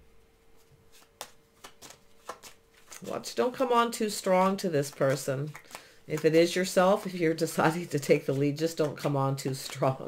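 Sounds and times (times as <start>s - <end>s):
faint steady hum: 0.0s - 10.0s
cards clicking and snapping: 0.9s - 3.1s, 4.2s - 10.0s.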